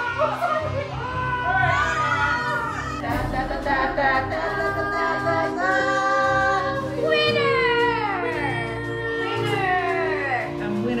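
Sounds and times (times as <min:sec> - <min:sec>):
a cappella choir singing: 0:02.8 - 0:07.4.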